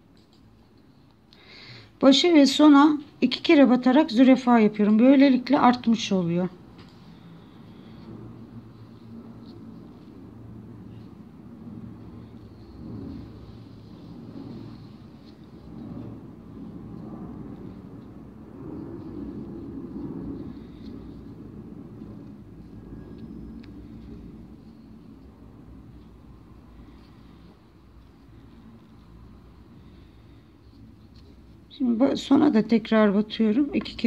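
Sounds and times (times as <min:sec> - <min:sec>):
low rumbling background noise: 0:00.0 - 0:34.0.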